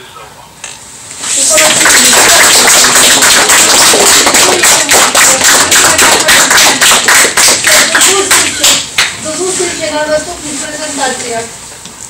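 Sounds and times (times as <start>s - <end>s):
audience applauding: 1.4s - 9.1s.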